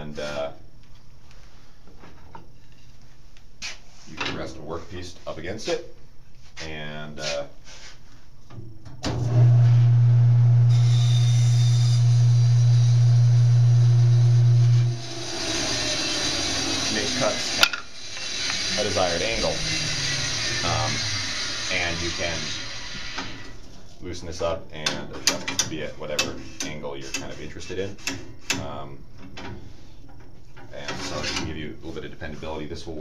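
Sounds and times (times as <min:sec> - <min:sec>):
machine electric hum: 0:08.6 - 0:24.4
hissing noise: 0:14.6 - 0:23.9.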